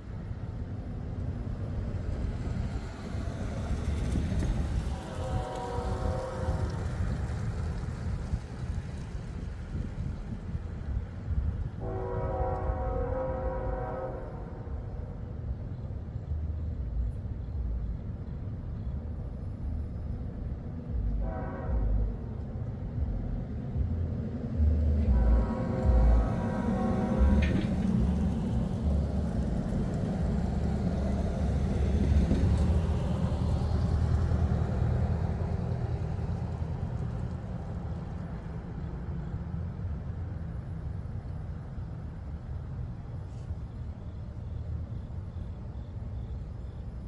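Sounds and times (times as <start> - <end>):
low rumble of train: 0.0 - 47.0
locomotive horn blasts: 4.8 - 7.1, 11.8 - 14.8, 21.2 - 22.2, 25.0 - 28.5.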